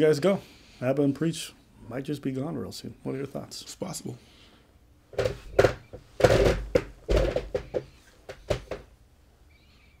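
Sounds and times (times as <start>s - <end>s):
camera handling knocks and rustles: 5.1s - 8.9s.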